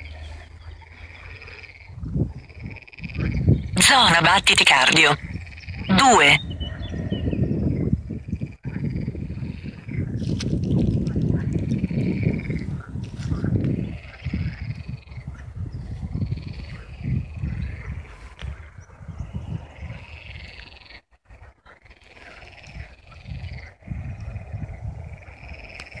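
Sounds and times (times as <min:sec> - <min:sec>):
frogs croaking: 0:00.0 - 0:03.8, 0:04.4 - 0:10.2, 0:11.2 - 0:26.0.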